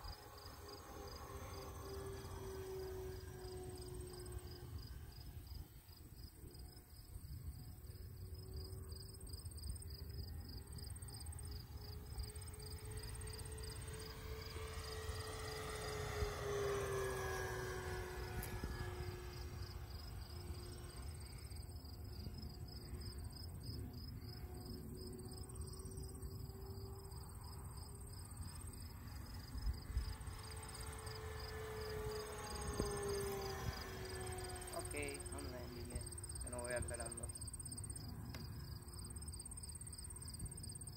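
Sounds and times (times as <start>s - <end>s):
low wind rumble: 0.0s - 40.9s
model airplane propeller drone: 0.0s - 40.9s
insect chirping: 19.2s - 34.7s, 37.4s - 40.9s.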